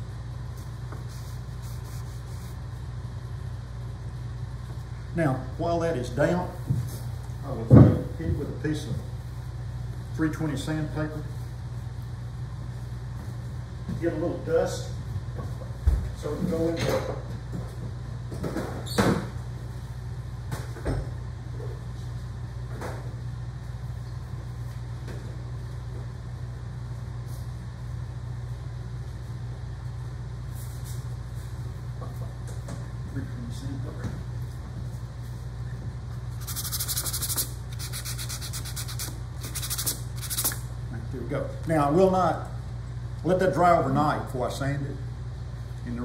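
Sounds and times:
steady low hum: 0.0 - 46.0
sandpaper scratching strokes: 36.4 - 40.6.

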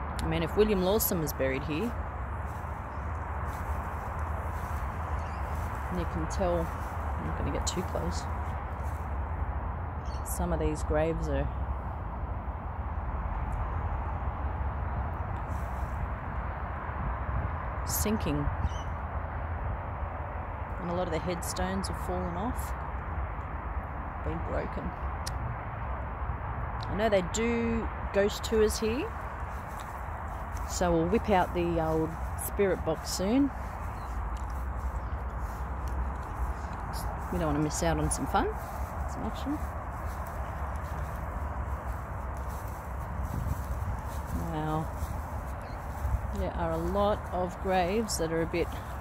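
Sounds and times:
constant low rumble outdoors: 0.0 - 49.0.

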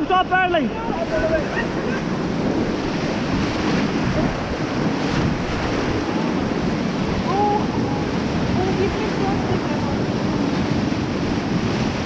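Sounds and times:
river rapids rushing: 0.0 - 12.0
wind buffeting microphone: 0.0 - 12.0.

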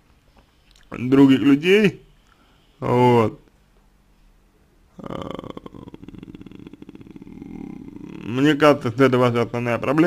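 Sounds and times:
man speaking: 0.9 - 2.1, 2.8 - 3.5, 5.0 - 10.0
man's creaky vocal fry hesitation: 4.9 - 10.0.

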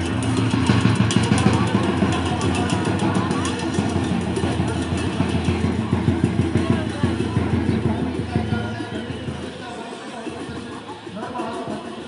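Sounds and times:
crowd voices: 0.0 - 12.0
drumming: 0.0 - 12.0.

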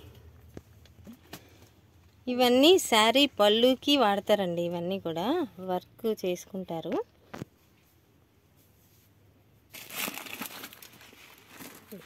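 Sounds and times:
plastic packets crinkling: 9.7 - 12.0.

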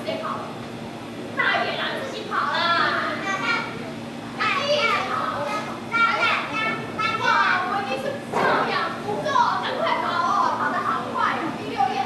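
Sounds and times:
young children chattering: 1.4 - 12.0.

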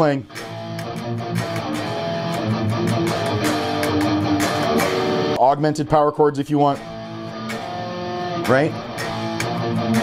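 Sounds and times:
electric guitar picked notes: 0.2 - 5.8, 6.6 - 10.0.

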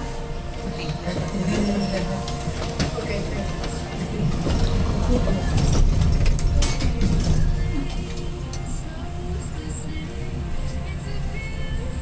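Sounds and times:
elevator car rumbling: 0.0 - 12.0.

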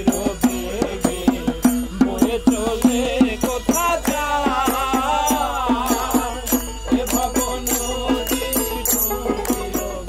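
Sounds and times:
man singing: 0.0 - 10.0
steady percussive beat: 0.0 - 10.0.

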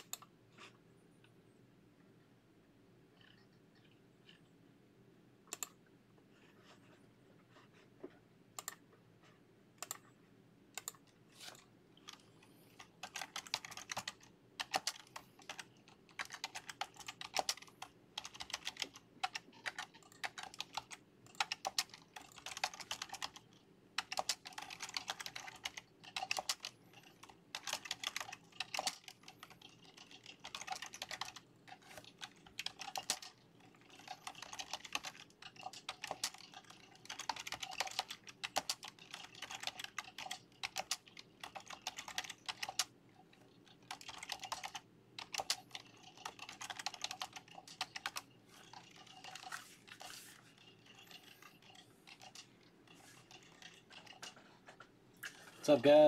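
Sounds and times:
typing on computer keyboard: 0.0 - 0.3, 9.8 - 10.0, 10.8 - 54.4.

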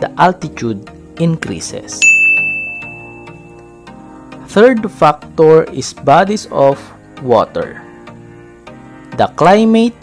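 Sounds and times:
soft background music: 0.0 - 10.0
high chime ringing: 2.0 - 3.9.

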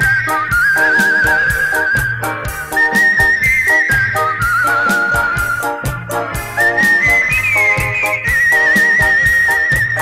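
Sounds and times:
bass and drum strokes: 0.0 - 10.0
pop music with held melody: 0.0 - 10.0.

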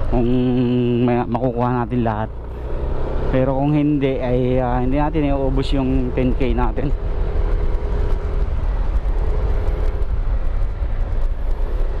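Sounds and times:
motorcycle engine rumble: 0.0 - 12.0.

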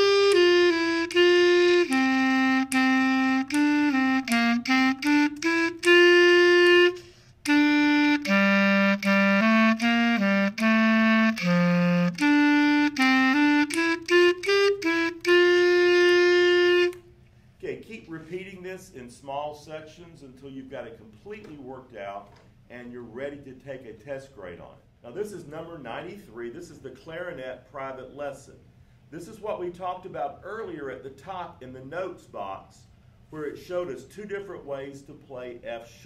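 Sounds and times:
clarinet melody: 0.0 - 17.1.

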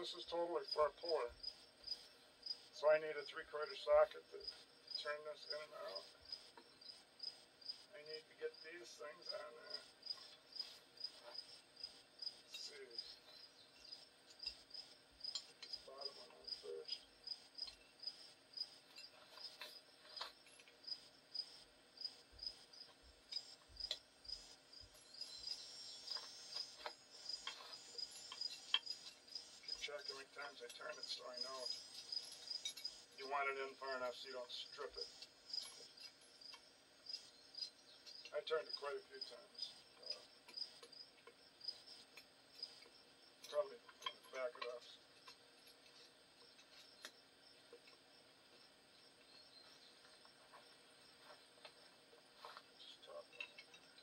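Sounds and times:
insects chirping: 0.0 - 54.0.

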